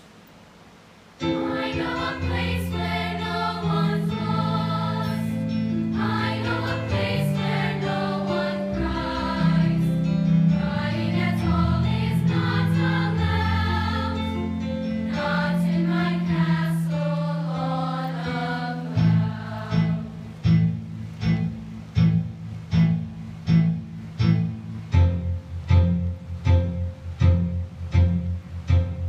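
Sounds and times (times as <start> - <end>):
choir singing in harmony: 1.2 - 20.4.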